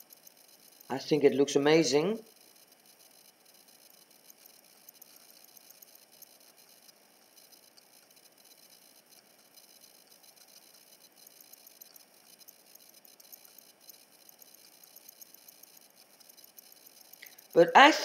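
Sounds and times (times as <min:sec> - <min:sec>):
light ticks: 0:02.3 - 0:17.5.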